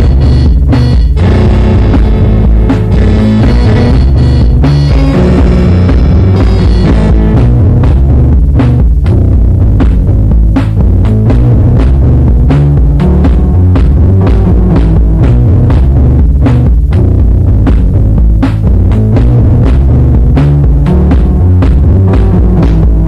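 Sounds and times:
deep bass line: 0:00.0 - 0:23.0
drum machine beat: 0:00.0 - 0:23.0.

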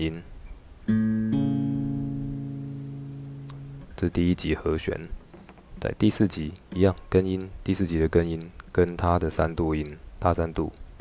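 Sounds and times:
acoustic guitar notes plucked: 0:00.8 - 0:04.0.

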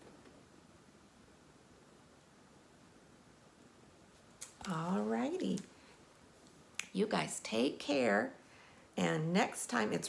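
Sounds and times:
woman speaking: 0:04.5 - 0:05.7, 0:06.8 - 0:08.4, 0:09.0 - 0:10.0.

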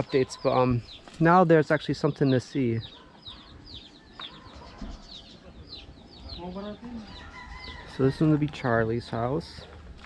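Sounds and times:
chicks peeping: 0:00.0 - 0:09.8.

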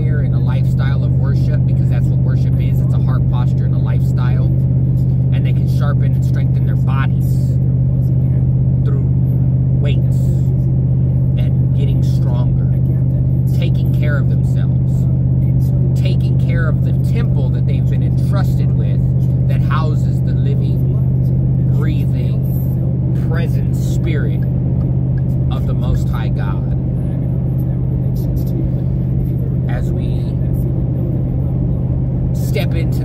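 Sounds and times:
vehicle cabin drone: 0:00.0 - 0:33.0
faint man's voice: 0:25.2 - 0:33.0.

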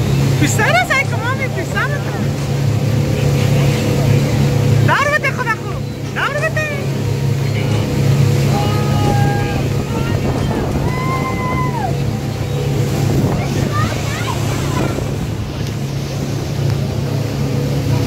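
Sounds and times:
boat motor droning: 0:00.0 - 0:18.0
voices calling out: 0:00.0 - 0:18.0
water rushing: 0:00.0 - 0:18.0
wind: 0:00.0 - 0:18.0.

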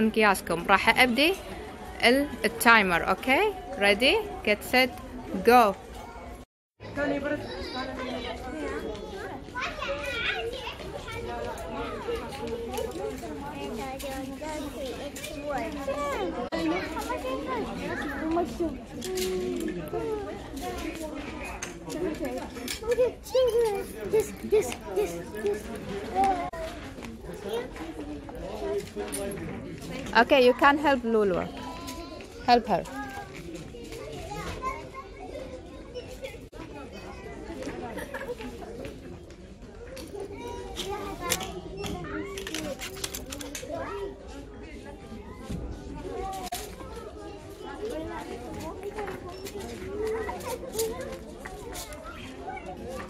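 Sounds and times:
background chatter: 0:00.0 - 0:53.0
children talking and calling out: 0:00.0 - 0:53.0.

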